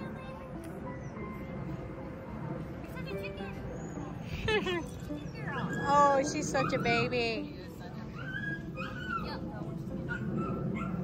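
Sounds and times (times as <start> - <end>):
dog whining: 5.2 - 7.2, 8.1 - 9.5.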